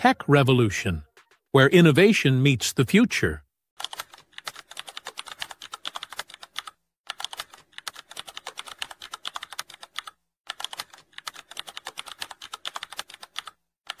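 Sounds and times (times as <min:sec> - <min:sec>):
fast keyboard clicks: 0:03.8 - 0:14.0.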